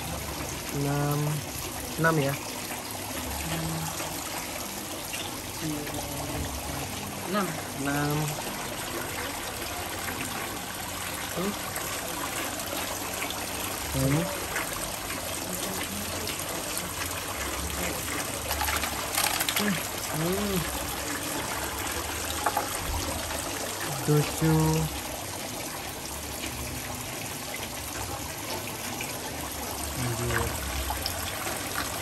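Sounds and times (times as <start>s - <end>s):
trickle of running water: 0.0s - 32.0s.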